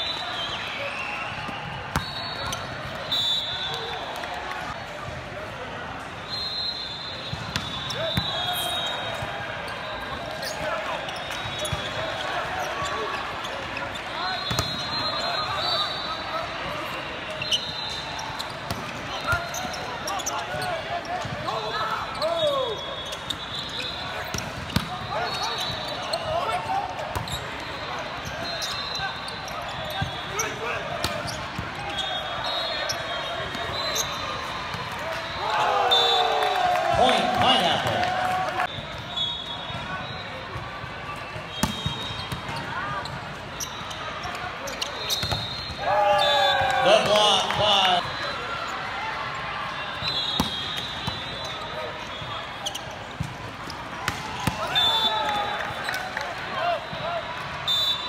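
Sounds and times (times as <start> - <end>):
hubbub of voices: 0.0 - 58.0
shoe squeaks: 6.6 - 16.2, 17.3 - 21.4, 22.1 - 26.6, 27.2 - 34.4, 41.5 - 46.4, 50.0 - 53.1
players shouting: 34.9 - 38.7, 45.8 - 48.5.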